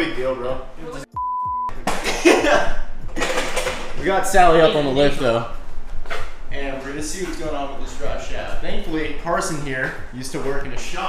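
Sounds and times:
man talking: 0.0 - 1.1, 4.0 - 5.6, 6.5 - 11.0
high censor beep: 1.1 - 1.7.

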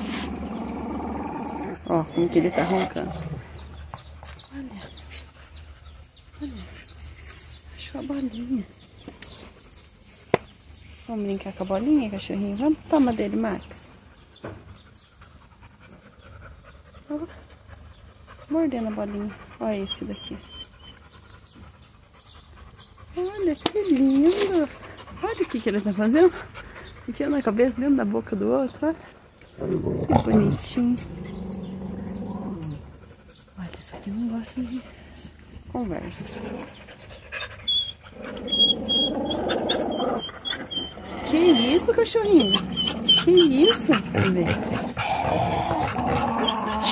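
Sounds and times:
dog growling: 0.0 - 3.8, 29.6 - 33.0, 36.1 - 37.2, 38.0 - 46.9
dog panting: 14.2 - 28.0, 36.0 - 46.9.

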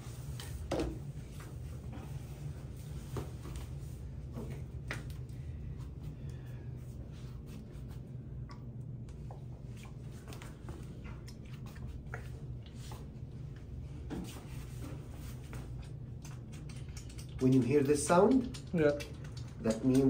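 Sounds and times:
steady low room hum: 0.0 - 20.0.

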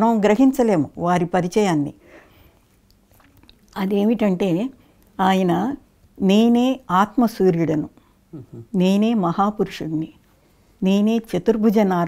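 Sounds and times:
person breathing: 2.0 - 2.6
faint mouth clicks: 2.8 - 3.8
person speaking: 8.4 - 10.2.

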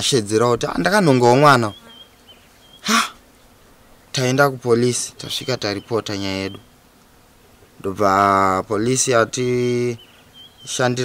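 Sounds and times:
man speaking: 0.0 - 1.8, 4.2 - 6.6, 7.8 - 10.0, 10.7 - 11.0
sharp intake of breath: 2.8 - 3.2.

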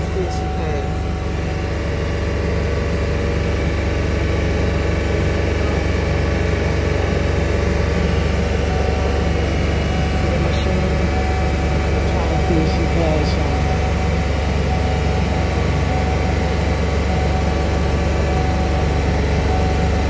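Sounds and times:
van engine idling: 0.0 - 20.0.

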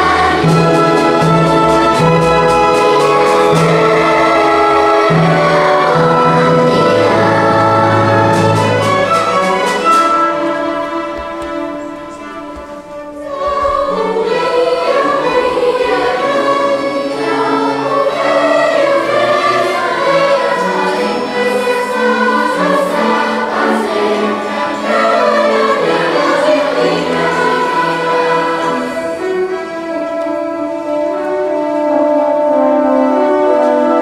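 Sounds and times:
children's choir singing: 0.0 - 34.0
orchestral accompaniment: 0.0 - 34.0.

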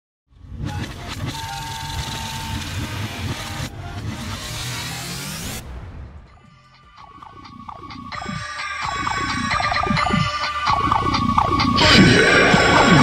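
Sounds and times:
car engine revving: 0.4 - 6.2.

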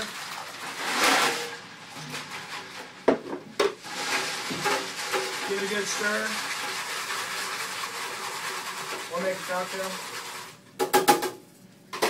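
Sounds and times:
whisk swishing liquid: 3.9 - 10.6.

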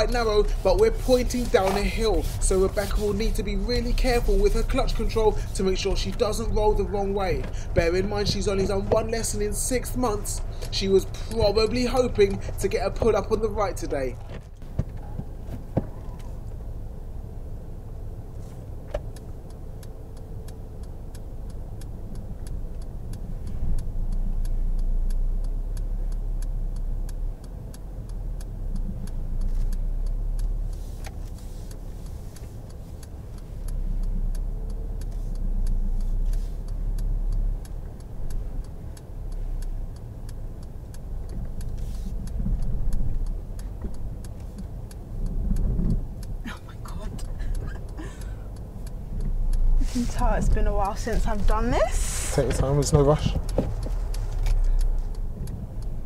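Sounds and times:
indicator ticking: 0.0 - 14.1, 16.4 - 56.0
car engine revving: 0.0 - 56.0.

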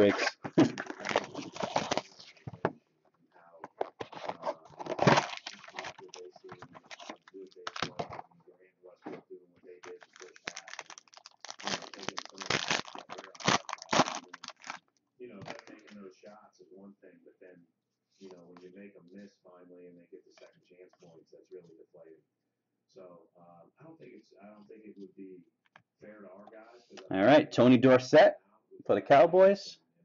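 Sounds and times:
cards being handled: 0.0 - 2.7, 3.6 - 8.2
foil wrapper crinkling and tearing: 0.5 - 2.2, 4.1 - 8.1, 9.8 - 14.8, 15.4 - 15.8.

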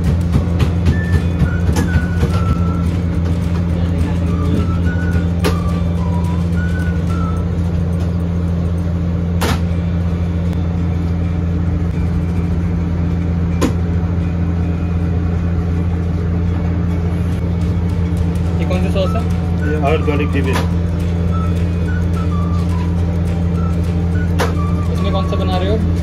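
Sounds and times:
low machine hum: 0.0 - 26.0.

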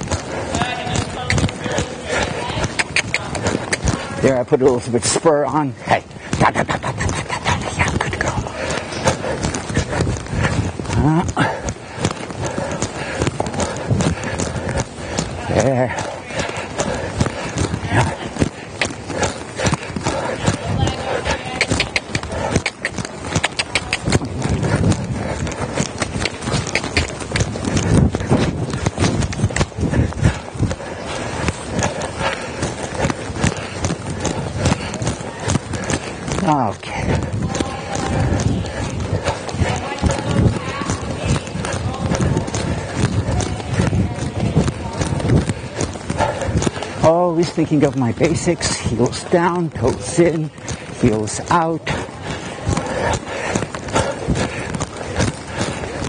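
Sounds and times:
hoofbeats on soft dirt: 0.0 - 56.0
horse breathing: 0.0 - 56.0.

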